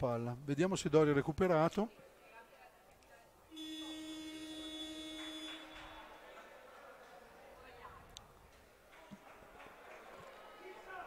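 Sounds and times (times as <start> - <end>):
scoreboard buzzer: 3.5 - 6.0.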